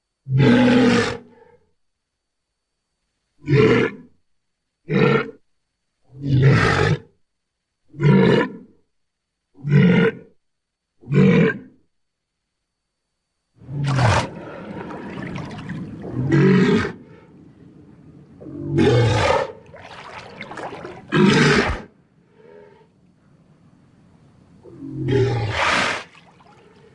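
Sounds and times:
dinosaur roars: 0.3 - 1.4, 13.6 - 17.7, 18.3 - 22.9, 24.7 - 26.1
steady background noise: 10.3 - 26.9.

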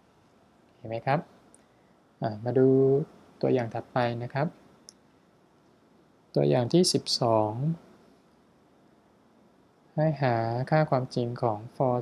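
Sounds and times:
man speaking: 0.8 - 1.3, 2.2 - 4.6, 6.4 - 7.8, 10.0 - 12.0.

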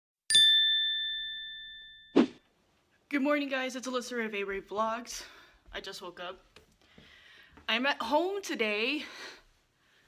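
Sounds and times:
chime ding: 0.3 - 2.4.

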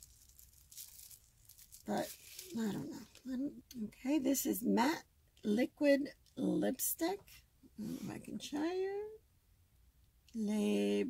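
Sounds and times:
bubble wrap crinkling: 0.0 - 3.3.

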